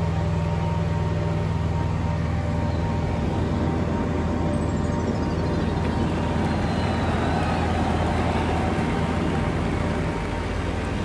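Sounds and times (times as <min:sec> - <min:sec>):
light aircraft engine droning: 0:00.0 - 0:11.0.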